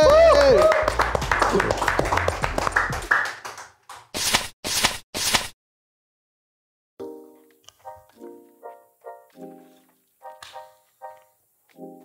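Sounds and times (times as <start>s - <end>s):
people clapping: 0.0s - 4.2s.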